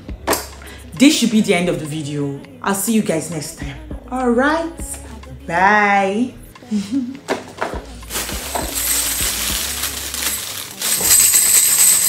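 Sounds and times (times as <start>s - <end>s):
small pieces rattling in plastic pouch: 8.1s - 12.0s.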